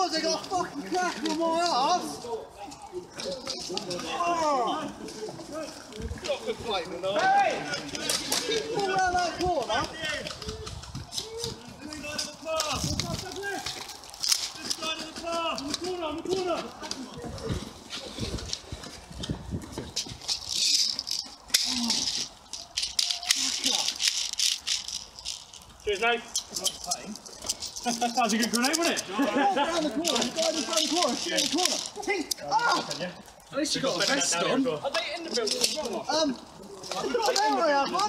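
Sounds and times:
people shouting: 7.0s - 13.6s.

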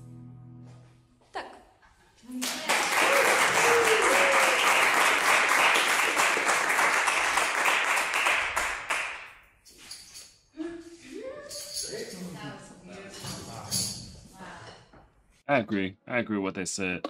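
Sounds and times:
audience applause: 2.4s - 9.2s.

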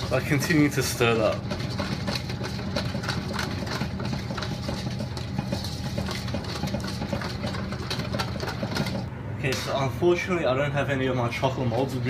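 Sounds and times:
whisk scraping metal bowl: 0.0s - 9.1s.

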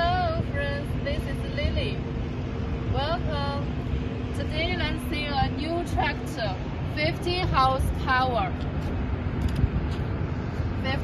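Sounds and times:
woman speaking: 0.0s - 2.0s, 2.9s - 3.7s, 4.3s - 8.6s, 10.8s - 11.0s
low rumble: 0.0s - 11.0s
mechanical hum: 0.0s - 11.0s.

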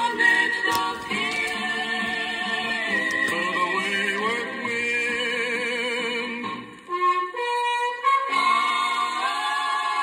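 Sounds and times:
orchestra and chorus music: 0.0s - 10.0s.

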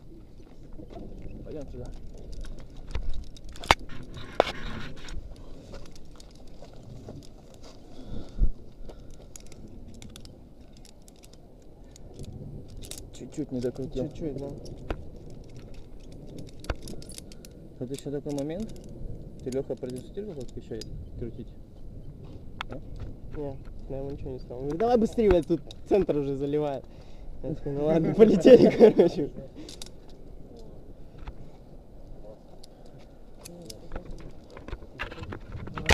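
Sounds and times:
rumbling handling noise: 0.0s - 27.0s, 28.7s - 35.9s
faint metal clinks: 9.0s - 21.0s.

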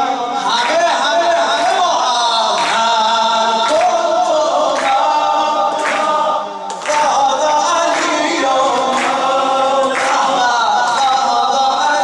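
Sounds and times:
voices singing together: 0.0s - 12.0s.

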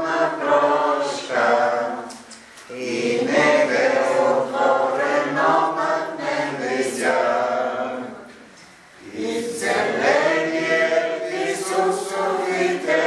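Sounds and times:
group singing a hymn: 0.0s - 13.0s.

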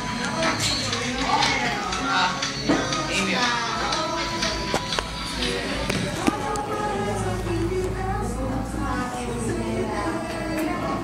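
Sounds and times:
young voices chattering: 0.0s - 11.0s
young voices singing: 0.0s - 11.0s.

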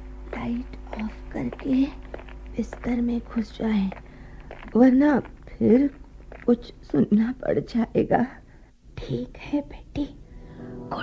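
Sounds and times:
person speaking: 0.3s - 8.2s.

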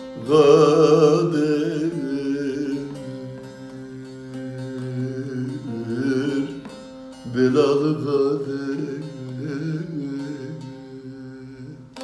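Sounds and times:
lute strum: 0.0s - 12.0s.

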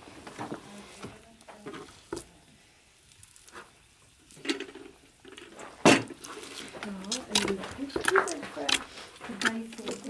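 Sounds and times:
hands kneading dough: 0.0s - 4.4s, 5.5s - 10.0s.

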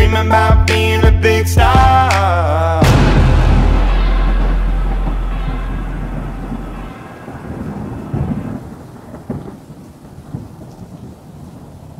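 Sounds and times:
sharp thunder cracks: 2.8s - 11.2s
deep thunder rumble: 2.8s - 11.9s
rain: 4.2s - 11.9s.

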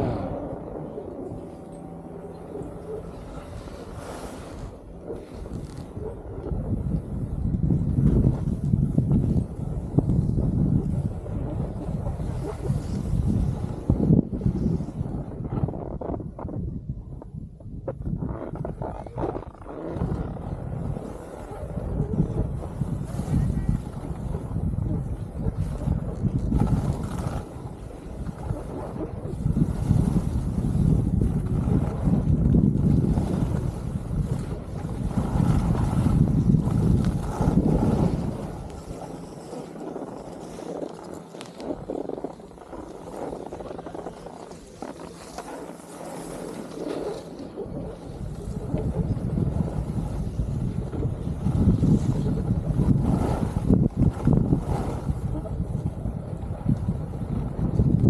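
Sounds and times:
wind buffeting microphone: 0.0s - 58.0s
skis sliding on packed snow: 3.2s - 6.2s, 8.0s - 15.0s, 22.6s - 24.5s, 25.5s - 56.7s.

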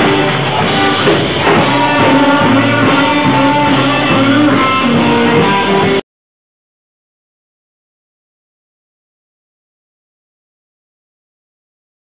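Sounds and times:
electric guitar: 0.0s - 6.0s
live band playing: 0.0s - 6.0s.

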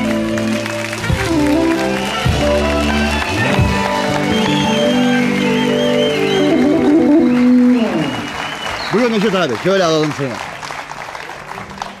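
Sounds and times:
music: 0.0s - 8.7s
audience applauding: 0.0s - 12.0s.

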